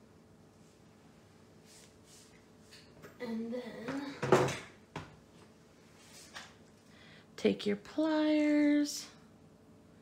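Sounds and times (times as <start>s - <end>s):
woman's voice: 3.2s - 4.3s, 7.4s - 9.2s.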